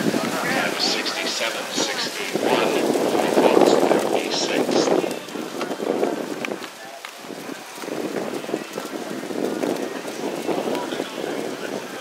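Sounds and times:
murmur of distant voices: 0.0s - 12.0s
wind buffeting microphone: 0.0s - 12.0s.

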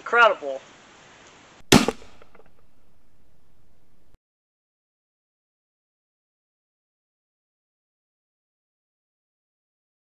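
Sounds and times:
sharp gunshot crack: 1.6s - 4.2s.

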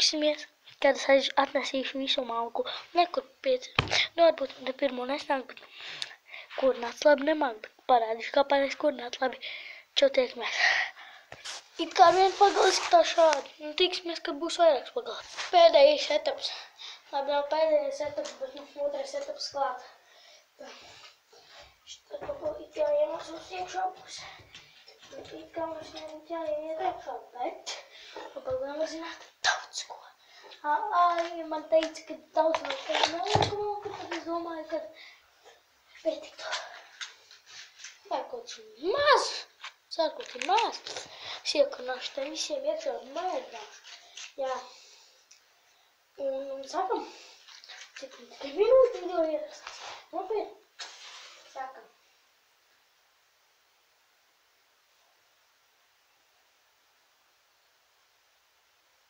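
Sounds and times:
child talking: 0.0s - 5.6s, 6.5s - 11.0s, 11.8s - 20.0s, 20.6s - 21.0s, 21.9s - 35.1s, 36.0s - 36.8s, 38.0s - 44.8s, 46.2s - 50.6s, 51.5s - 52.0s
person speaking: 0.0s - 5.7s, 11.4s - 20.0s, 21.9s - 24.4s, 25.0s - 35.1s, 38.0s - 44.8s, 46.2s - 50.6s.

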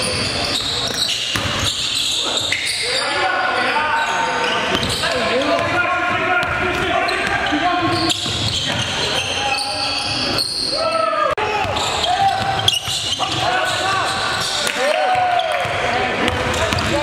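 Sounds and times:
voices echoing in hall: 0.0s - 17.0s.

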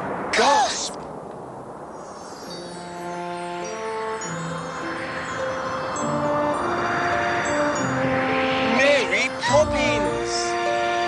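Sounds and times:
rushing whoosh: 0.0s - 10.6s
soft music with held notes: 2.4s - 11.0s.

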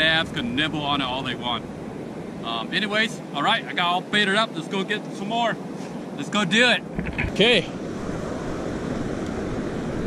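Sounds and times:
ocean surf breaking: 0.0s - 10.0s
wind on microphone: 6.8s - 10.0s.

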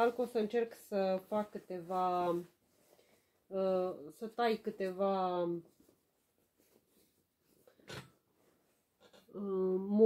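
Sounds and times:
fabric rustling: 0.0s - 3.4s, 4.4s - 9.0s.

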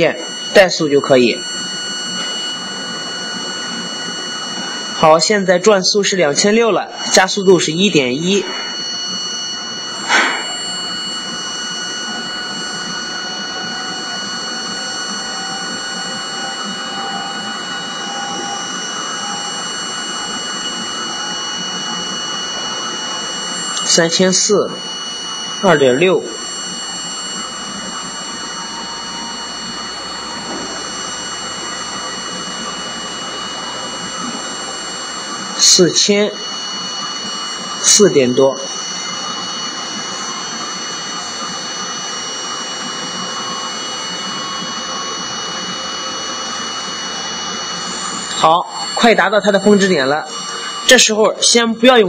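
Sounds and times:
high-pitched whines: 0.0s - 52.0s
motor whirring: 0.0s - 52.0s.

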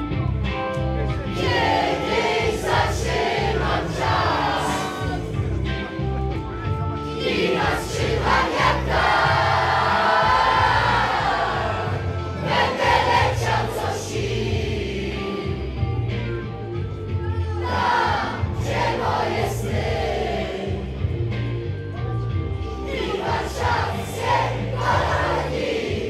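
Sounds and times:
backing music with steady beat: 0.0s - 26.0s.

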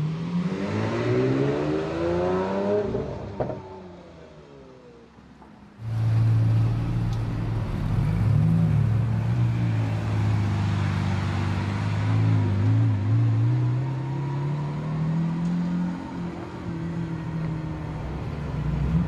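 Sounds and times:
car engine at low revs: 1.5s - 19.0s.

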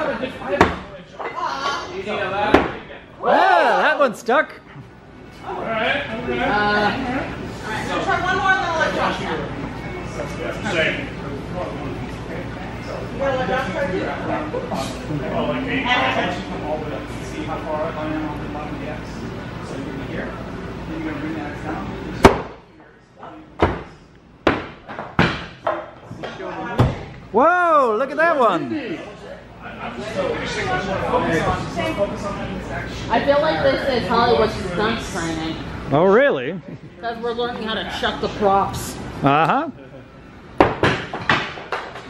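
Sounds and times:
axes hitting wooden boards: 2.5s - 2.8s, 22.2s - 22.6s, 23.6s - 25.9s, 40.6s - 42.0s.

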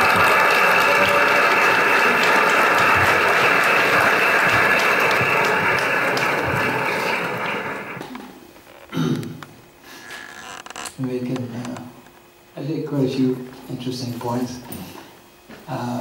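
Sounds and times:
audience applauding over loudspeakers: 0.0s - 8.1s.

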